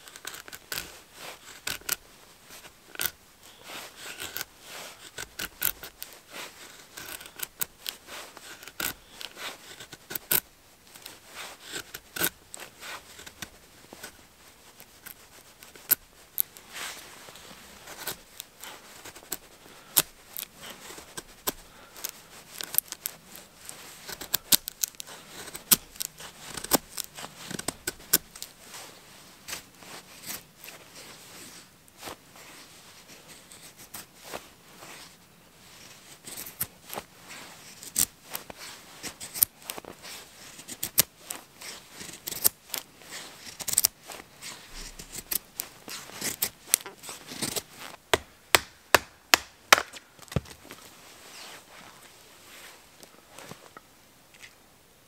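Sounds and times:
knife scraping wooden stick: 0.0 - 50.0.

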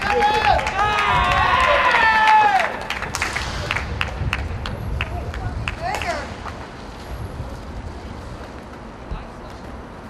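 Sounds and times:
low ballpark rumble: 0.0 - 10.0
hand claps: 2.2 - 6.6.

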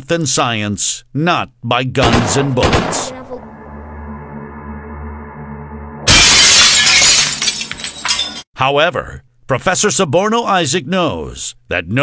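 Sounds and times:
background music: 2.7 - 6.1
crackling of breaking glass: 6.1 - 8.5
glass pane shattering: 6.1 - 8.5.

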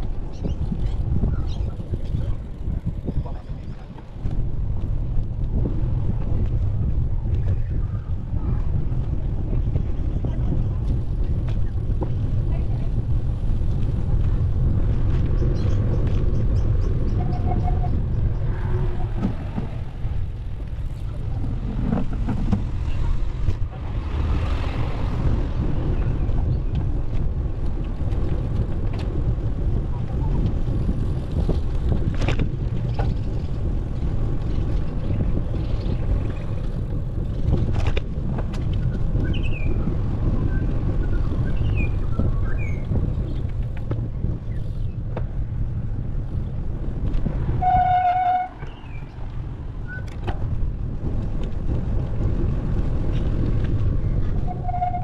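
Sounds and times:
bicycle tyre noise: 0.0 - 55.0
wind rumble on microphone: 0.0 - 55.0.

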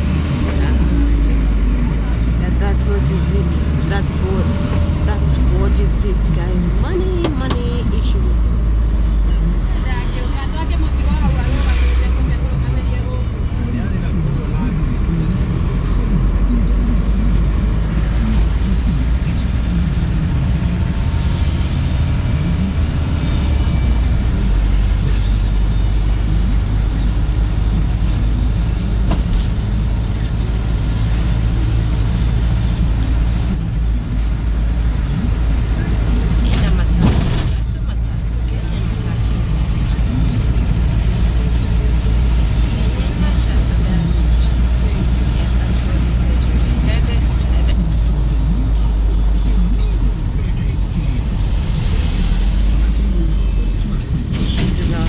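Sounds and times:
minibus engine and road rumble: 0.0 - 55.0
voices: 0.0 - 55.0.

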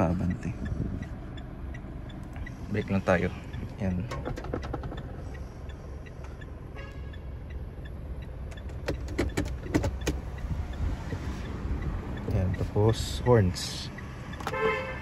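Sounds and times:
diesel engine idling: 0.0 - 15.0
gear shift lever clicks: 4.0 - 5.3, 8.4 - 10.4.

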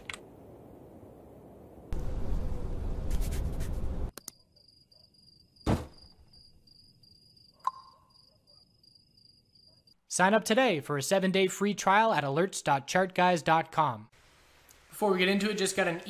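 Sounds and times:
high pulsing cricket chirp: 4.2 - 10.0.

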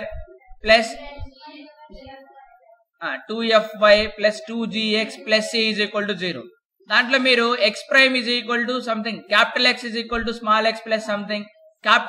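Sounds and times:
child singing: 0.1 - 2.8.

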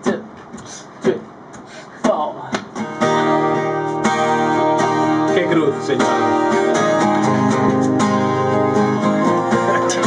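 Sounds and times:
acoustic guitar strumming: 2.0 - 10.0.

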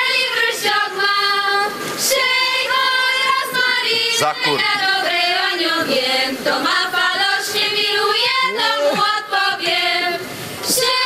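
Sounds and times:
women singing unaccompanied: 0.0 - 11.0.

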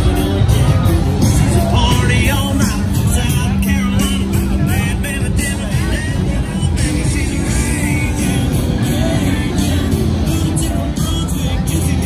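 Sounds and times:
loud music from bars: 0.0 - 12.0
people's voices: 0.0 - 12.0.

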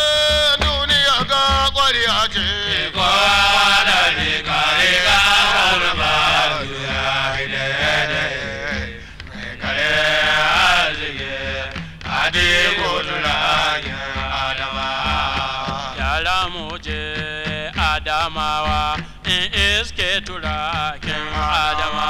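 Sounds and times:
steady drum accompaniment: 0.0 - 22.0
voices chanting a melody: 2.5 - 16.2, 21.0 - 22.0.

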